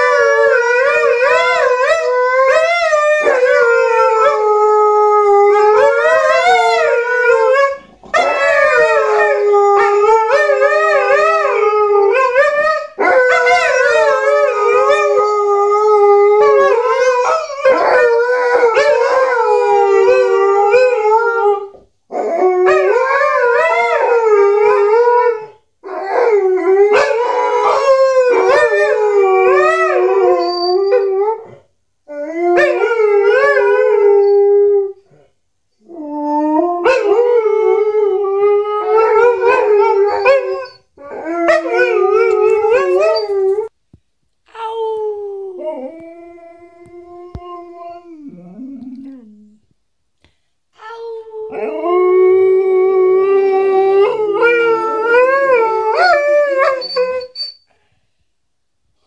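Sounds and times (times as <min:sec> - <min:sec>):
dogs howling: 0:00.0 - 0:35.0, 0:36.0 - 0:43.7, 0:51.4 - 0:57.3.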